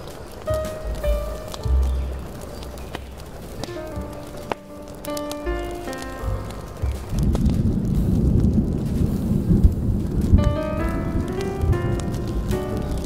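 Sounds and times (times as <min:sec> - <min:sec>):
deep rumble of thunder: 0:00.0 - 0:13.0
steady rain: 0:00.0 - 0:13.0
smooth jazz: 0:00.4 - 0:13.0.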